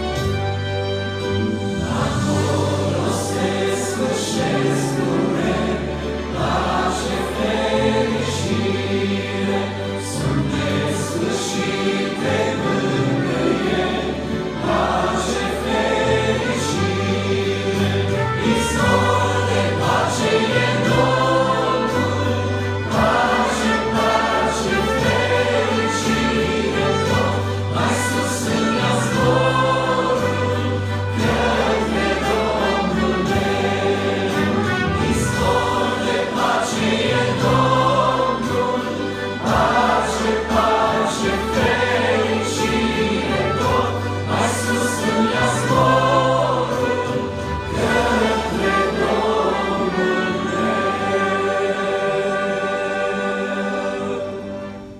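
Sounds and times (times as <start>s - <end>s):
accordion: 0.0s - 54.9s
trumpet: 0.0s - 54.9s
group singing a hymn in harmony: 1.2s - 54.9s.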